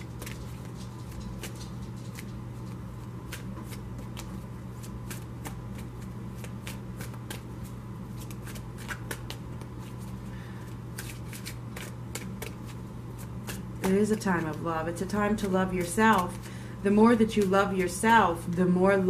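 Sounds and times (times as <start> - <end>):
cards being shuffled: 0.0 - 16.5, 17.1 - 18.6
low steady hum: 0.0 - 19.0.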